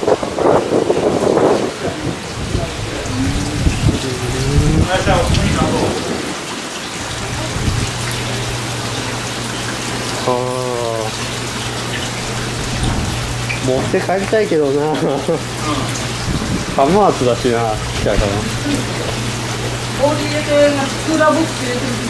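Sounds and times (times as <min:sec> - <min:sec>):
splashing and bubbling water: 0:00.0 - 0:22.0
brief voices: 0:02.0 - 0:06.0
low steady hum: 0:02.3 - 0:05.8.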